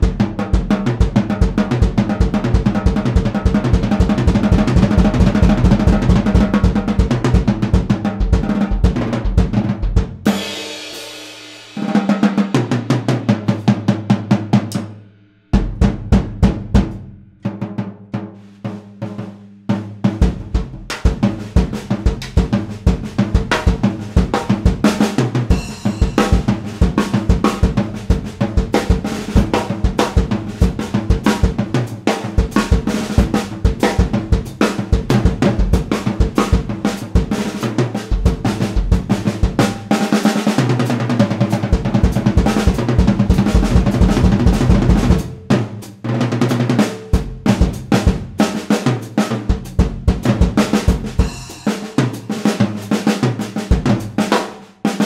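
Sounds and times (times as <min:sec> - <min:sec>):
drum kit playing: 0:00.0 - 0:55.0
cymbal ringing: 0:25.5 - 0:26.5, 0:46.8 - 0:47.7, 0:51.2 - 0:52.2.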